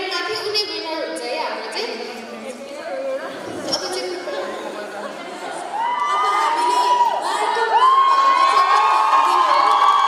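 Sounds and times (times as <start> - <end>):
chatter of voices in hall: 0.0 - 10.0.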